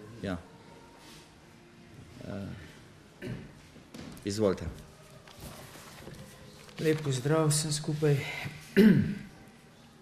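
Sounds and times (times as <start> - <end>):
man speaking: 6.8 - 8.7
man clearing throat: 8.8 - 9.3.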